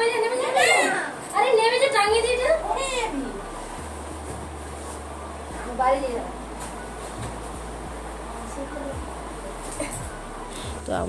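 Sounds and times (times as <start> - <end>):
young child's high voice: 0.0 - 3.3.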